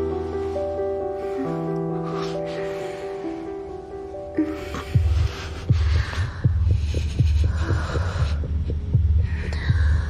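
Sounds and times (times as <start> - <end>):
breathy hisses: 0.3 - 10.0
heartbeat thuds: 5.0 - 10.0.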